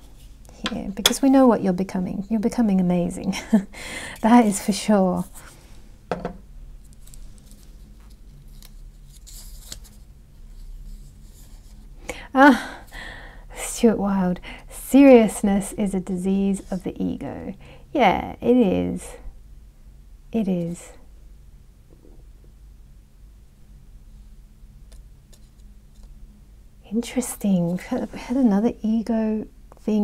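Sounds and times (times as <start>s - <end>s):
low steady hum: 0.0s - 30.0s
paper rustling and crackling: 6.8s - 11.8s.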